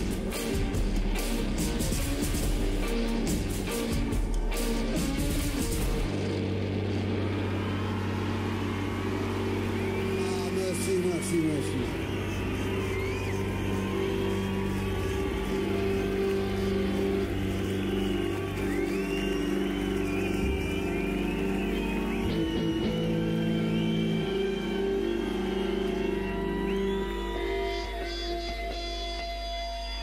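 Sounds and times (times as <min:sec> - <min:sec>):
droning electric guitars: 0:00.0 - 0:30.0
high sliding guitar tones: 0:20.8 - 0:30.0.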